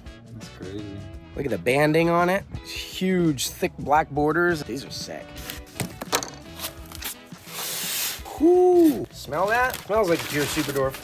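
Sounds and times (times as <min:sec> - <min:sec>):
background music: 0:00.0 - 0:11.0
packing material rustling: 0:06.5 - 0:11.0.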